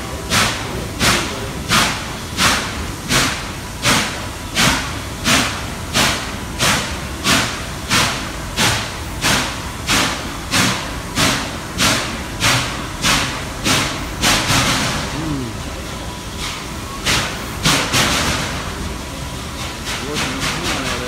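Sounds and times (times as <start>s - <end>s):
steam locomotive chuffing: 0.0s - 21.0s.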